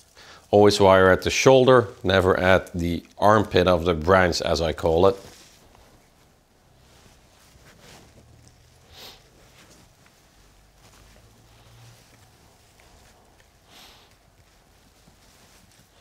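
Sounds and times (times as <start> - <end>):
faint rustling of needles: 0.0 - 16.0.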